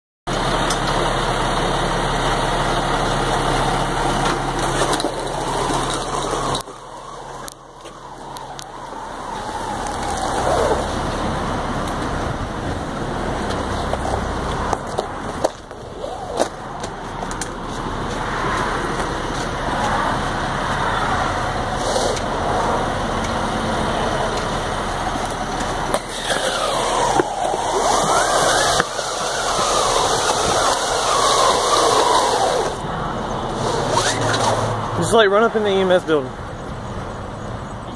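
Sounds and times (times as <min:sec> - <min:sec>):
hose dragged over asphalt: 0:00.3 - 0:36.2
fire engine running: 0:00.3 - 0:37.9.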